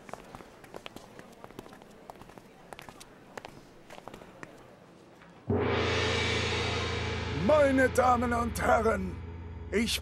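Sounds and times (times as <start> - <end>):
soft crowd background noise: 0.0 - 6.7.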